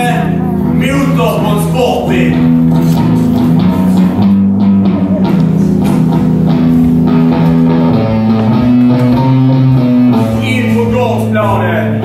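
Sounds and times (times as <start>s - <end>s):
electric guitar rock chords: 0.0s - 12.0s.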